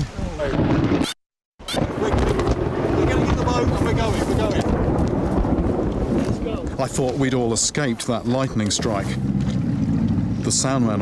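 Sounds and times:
wind buffeting microphone: 1.8 - 11.0.

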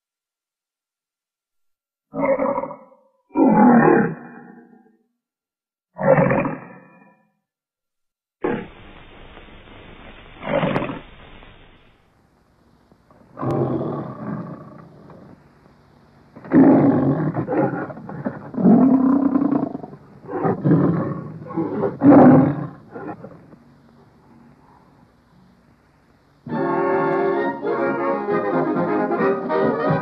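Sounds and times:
lion roaring: 2.1 - 4.8, 6.0 - 7.1, 8.4 - 9.0, 10.3 - 11.9, 13.1 - 15.4, 16.4 - 23.6
film hiss: 8.4 - 30.0.

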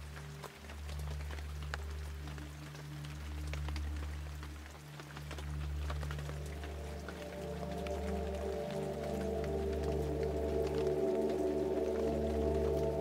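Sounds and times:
low steady drone: 0.0 - 13.0
rain drops ticking: 0.0 - 13.0.

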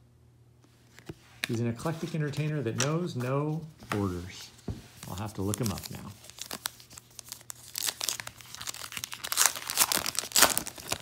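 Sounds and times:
card pack wrapper tearing: 5.0 - 11.0.

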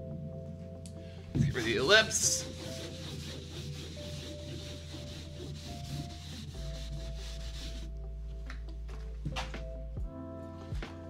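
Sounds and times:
eraser rubbing on blackboard: 1.4 - 7.9.

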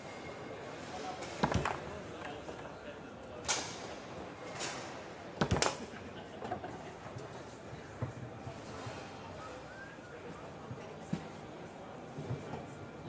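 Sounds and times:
murmur of voices: 0.4 - 13.0.

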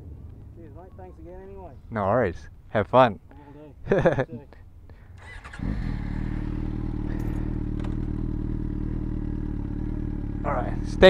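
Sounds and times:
motorcycle engine starting and idling: 5.1 - 11.0.

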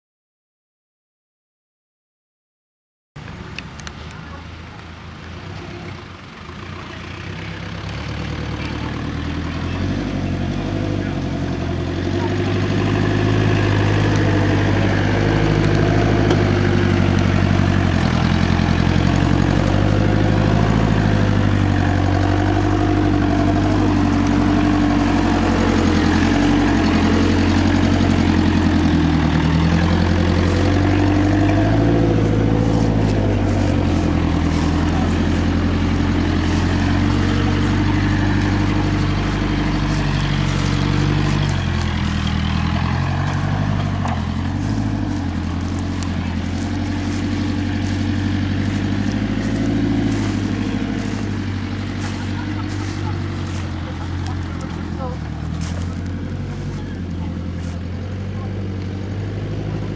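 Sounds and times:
vehicle engine at low revs: 3.2 - 59.9.

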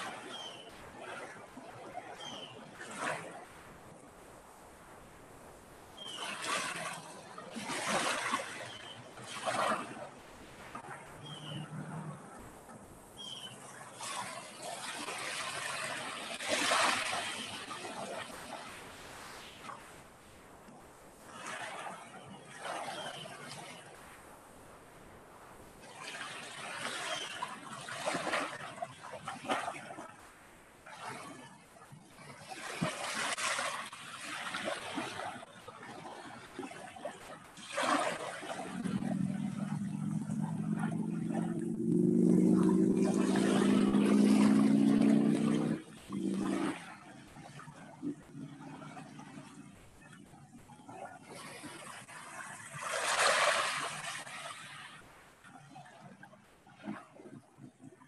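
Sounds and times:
trickling splashing water: 37.5 - 47.6.

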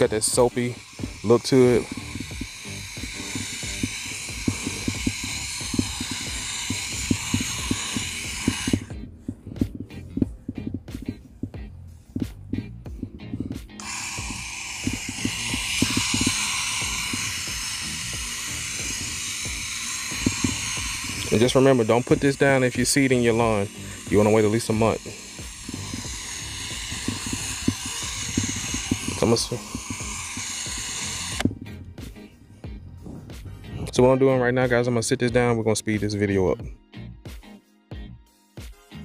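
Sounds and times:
sprayer nozzle hissing: 0.0 - 11.6, 12.2 - 31.6
low irregular thuds: 1.0 - 21.3, 24.8 - 33.9.

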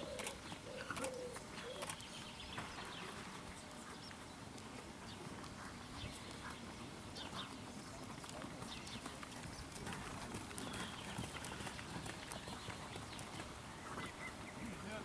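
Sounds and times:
outdoor background noise: 0.0 - 15.0
soft hoofbeats on sand: 1.3 - 15.0.

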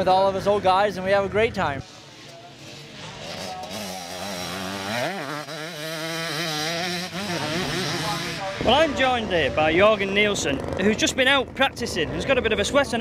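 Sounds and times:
motorcycle engine revving: 1.9 - 13.0.

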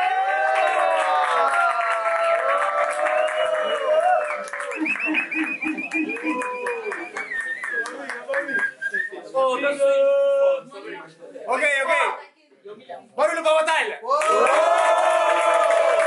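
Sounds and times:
men shouting and whooping: 0.0 - 7.1
hand clapping: 0.5 - 8.8.

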